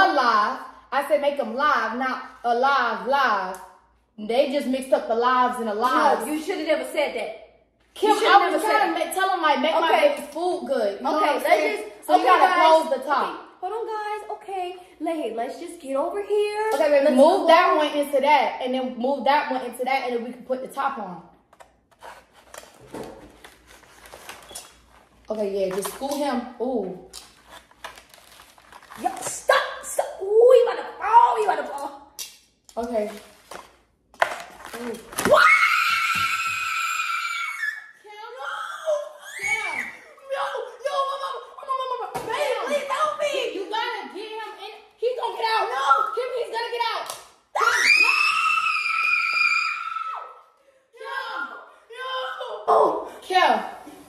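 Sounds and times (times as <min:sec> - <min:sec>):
excited talk: 0:00.0 - 0:21.2, 0:29.0 - 0:32.2, 0:34.8 - 0:53.8.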